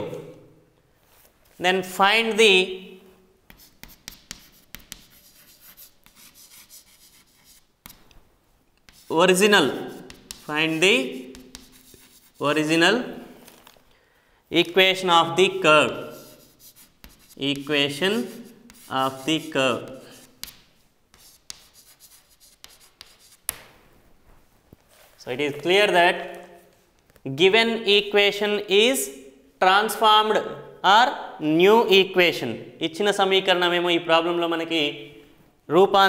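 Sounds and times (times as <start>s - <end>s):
chalk scratching on chalkboard: 3.5s - 8.1s, 8.8s - 12.8s, 15.5s - 23.5s
chalk tapping on board: 3.5s - 8.1s, 8.8s - 9.1s, 9.7s - 12.5s, 16.0s - 23.7s.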